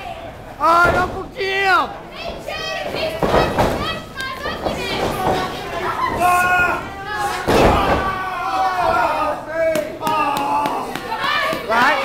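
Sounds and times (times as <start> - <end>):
children yelling: 2.2 - 9.4.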